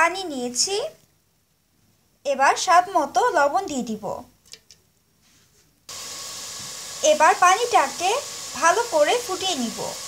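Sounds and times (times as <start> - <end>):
pot of water hissing on stove: 5.9 - 10.0.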